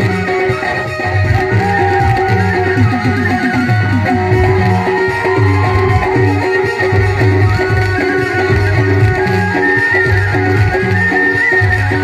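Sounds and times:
hand drum beating rhythm: 0.0 - 12.0
high held melody line: 0.0 - 12.0.

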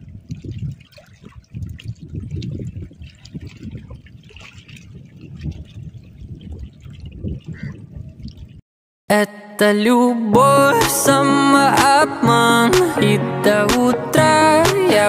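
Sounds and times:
water lapping against rocks: 0.0 - 8.6
wind rumbling on microphone: 0.0 - 8.6.

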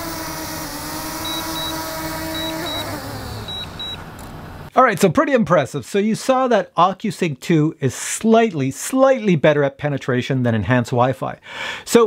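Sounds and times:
drone propellers whining: 0.0 - 4.7
short high beeps: 1.2 - 4.0.

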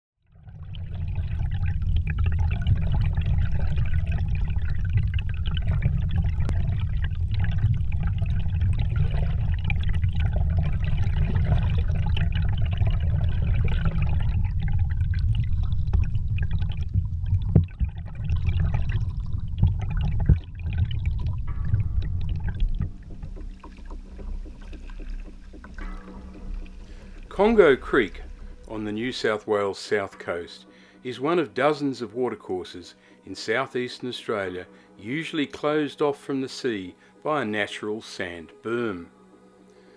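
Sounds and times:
faint underwater crackles and clicks: 0.2 - 28.8
underwater rumble: 0.2 - 29.1.

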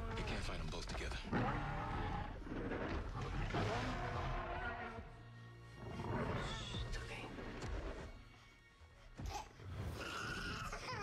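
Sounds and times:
movie soundtrack music: 0.0 - 11.0
dinosaur roaring: 1.2 - 5.0.

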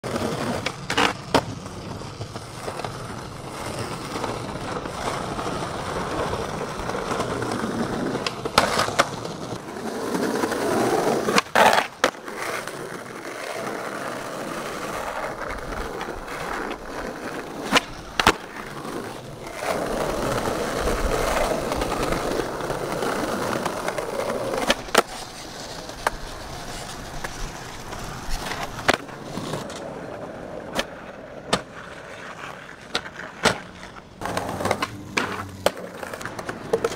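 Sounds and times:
skateboard clacks: 0.0 - 36.9
skateboard wheels rolling on concrete: 0.0 - 36.9.

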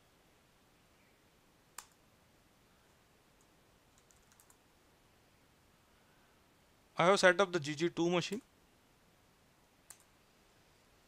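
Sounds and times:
computer mouse click: 1.7 - 2.0, 3.4 - 4.6, 9.9 - 10.1.

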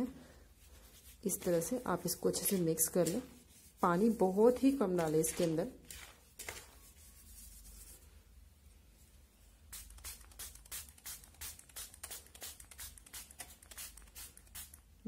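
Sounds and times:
hands rubbing through powder: 0.5 - 5.5, 6.8 - 8.2
spray bottle squirting: 9.7 - 14.9.

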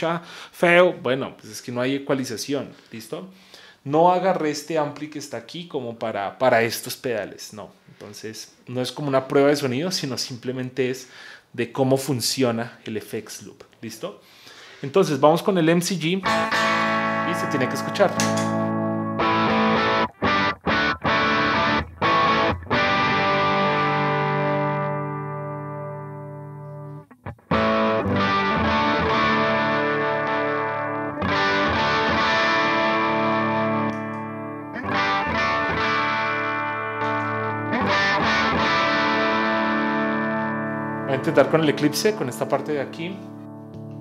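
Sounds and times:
overdriven electric guitar chords: 16.2 - 44.0.

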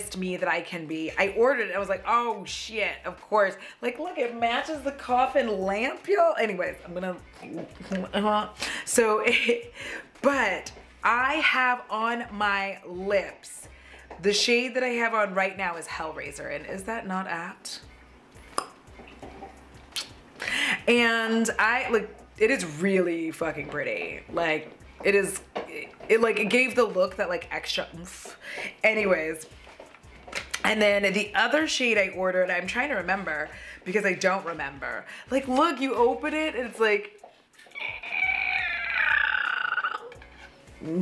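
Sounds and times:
long creaking squeal: 37.7 - 40.2.

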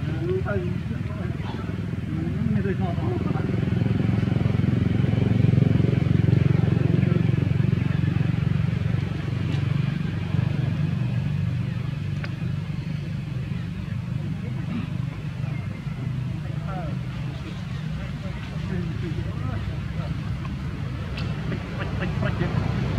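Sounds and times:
low motor rumble: 0.0 - 22.9.

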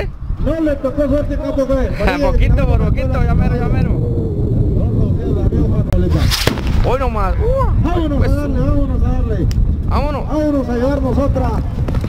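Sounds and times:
firework bang: 6.1 - 7.4.

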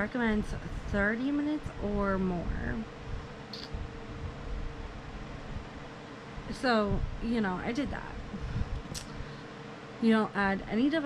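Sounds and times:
electric fan hissing: 0.0 - 11.0
faint even hum: 0.0 - 11.0.

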